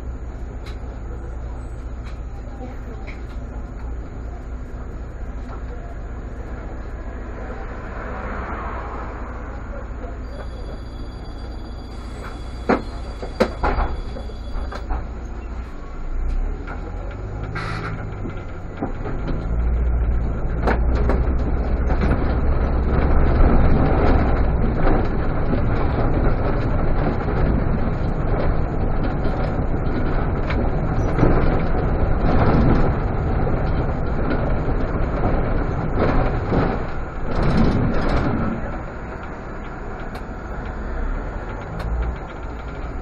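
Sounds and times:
bus engine accelerating: 0.0s - 43.0s.

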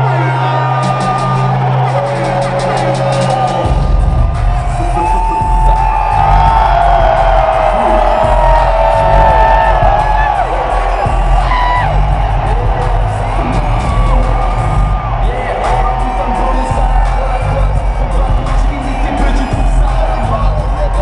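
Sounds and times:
crowd cheering: 0.0s - 21.0s
music with heavy bass beat: 0.0s - 21.0s
whoops and shouts: 4.7s - 21.0s.

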